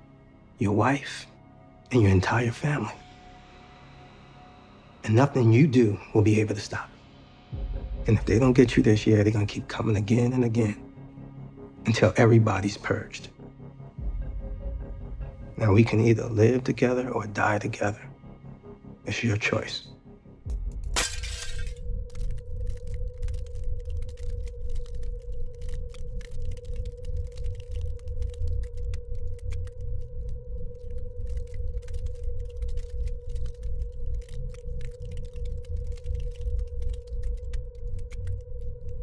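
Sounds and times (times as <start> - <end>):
dark drone hum: 0.0 - 39.0
low rumble: 20.1 - 39.0
crackles: 20.5 - 39.0
glass shattering: 21.0 - 21.8.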